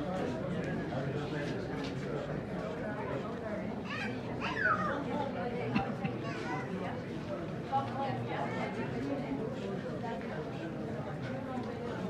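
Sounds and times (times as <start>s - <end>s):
murmur of adults talking: 0.0s - 12.0s.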